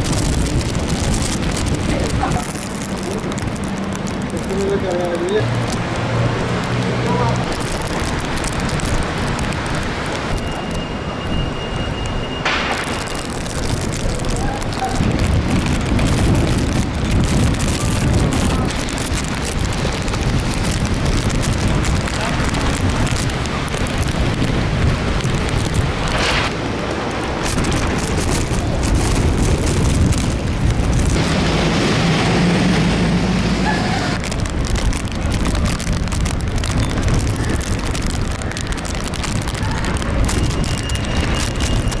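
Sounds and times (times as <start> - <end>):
rain on wet pavement: 0.0 - 42.0
storm wind buffeting microphone: 0.0 - 42.0.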